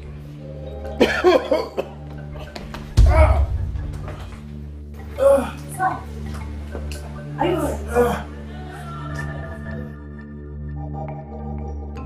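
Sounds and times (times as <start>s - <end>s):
low music drone: 0.0s - 12.0s
man coughing hard: 1.0s - 2.0s.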